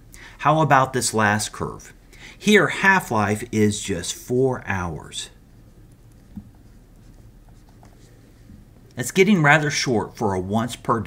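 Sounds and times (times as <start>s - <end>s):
stylus scratching on tablet screen: 5.4s - 8.5s.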